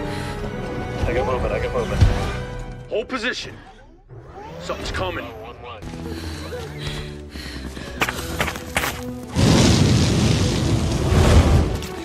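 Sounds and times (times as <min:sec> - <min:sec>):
music: 0:00.0 - 0:12.0
flamethrower rushing: 0:09.3 - 0:11.9.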